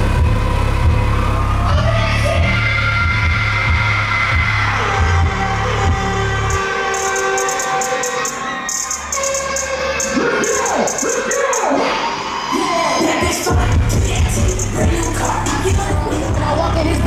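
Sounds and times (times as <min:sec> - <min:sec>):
heavy bass: 0:00.0 - 0:17.0
held synth line: 0:00.0 - 0:17.0
voices sliding in pitch: 0:06.4 - 0:16.8
hi-hats: 0:06.5 - 0:11.8, 0:13.2 - 0:16.6.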